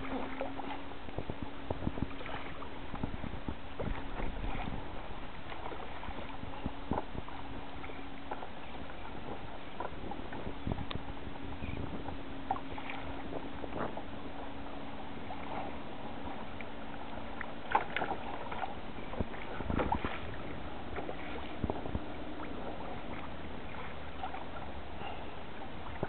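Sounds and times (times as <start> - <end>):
water slaps and knocks on hull: 0.0 - 14.1, 15.2 - 26.0
water rushing along kayak hull: 0.0 - 26.0.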